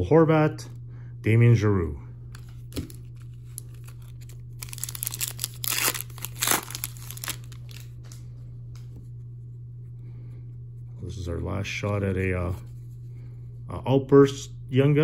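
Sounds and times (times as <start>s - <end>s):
foil wrapper tearing and crinkling: 2.6s - 8.0s.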